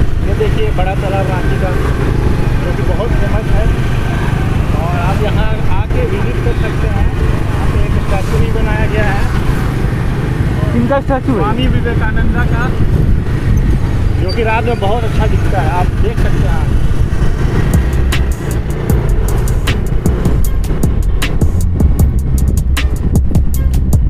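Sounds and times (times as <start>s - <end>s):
motorbike engine: 0.0s - 24.0s
road noise: 0.0s - 24.0s
wind rumble on microphone: 0.0s - 24.0s.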